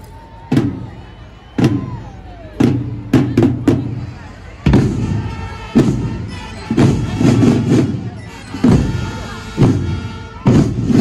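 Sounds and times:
marching drums and cymbals: 0:00.0 - 0:11.0.

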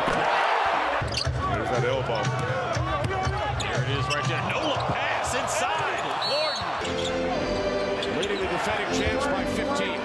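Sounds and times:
arena crowd: 0:00.0 - 0:10.0
sneakers squeaking on hardwood: 0:06.1 - 0:07.2.

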